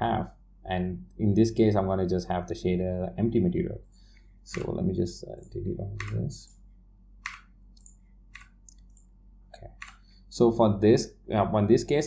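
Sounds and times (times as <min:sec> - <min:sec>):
low steady hum: 0:00.0 - 0:12.0
computer mouse clicking: 0:06.0 - 0:06.3, 0:07.2 - 0:09.0, 0:09.6 - 0:10.1.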